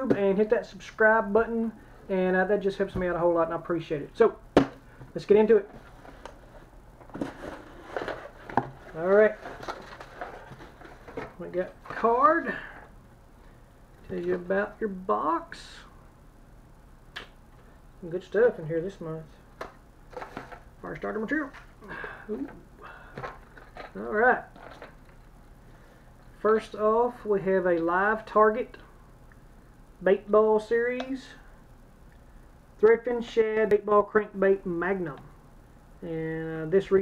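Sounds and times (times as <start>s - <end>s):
papery rustles: 5.8s - 12.0s.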